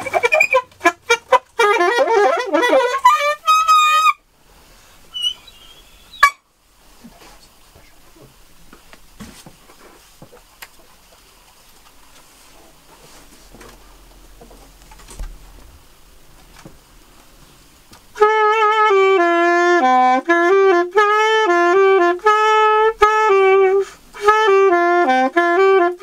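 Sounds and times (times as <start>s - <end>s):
saxophone jazz phrase: 0.0s - 4.2s, 18.2s - 26.0s.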